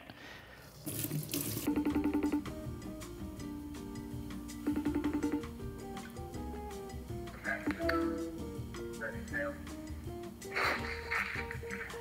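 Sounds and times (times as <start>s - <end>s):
tap water running into sink: 0.8s - 1.7s
music: 1.7s - 12.0s.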